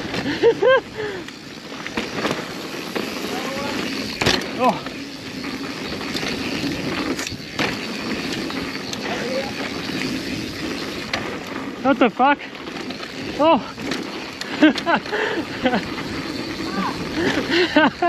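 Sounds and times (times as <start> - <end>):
bike knocking and rattling: 0.0 - 18.0
bike tyre and wind noise: 0.0 - 18.0.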